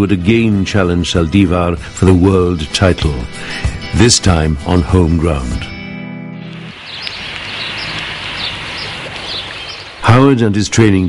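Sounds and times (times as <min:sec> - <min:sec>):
small birds chirping: 0:06.4 - 0:10.3
steady outdoor hiss: 0:06.4 - 0:11.0.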